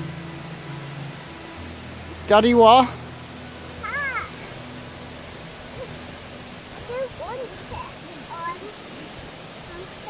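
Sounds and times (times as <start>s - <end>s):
stream rushing: 0.0s - 10.0s
young child crying: 3.8s - 4.4s.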